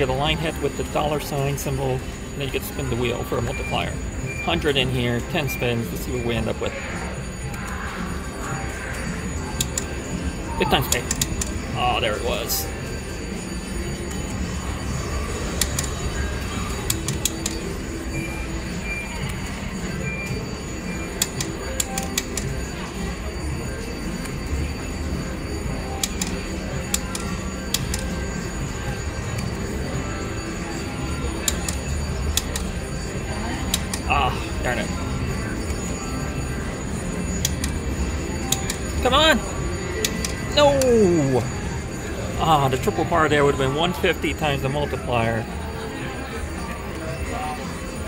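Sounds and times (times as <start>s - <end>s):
slot machine reels clicking: 0.0s - 6.8s, 7.4s - 45.8s
slot machine tunes and chimes: 0.0s - 48.0s.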